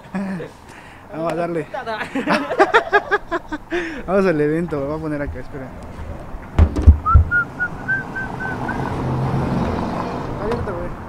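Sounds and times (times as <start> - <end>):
camera handling knocks: 6.4 - 7.3.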